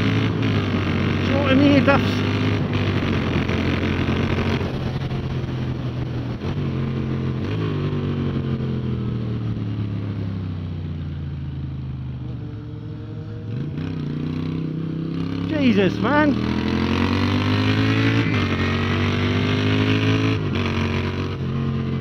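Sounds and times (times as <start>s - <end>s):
motorcycle engine: 0.0s - 22.0s.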